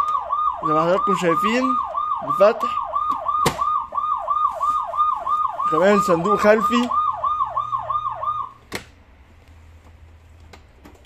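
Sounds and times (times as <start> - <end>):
toy electronic siren wailing: 0.0 - 8.6.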